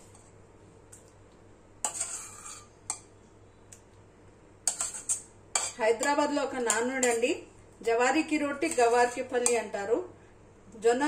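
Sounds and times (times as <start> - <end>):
steel spoon clinking on pan: 4.7 - 7.3.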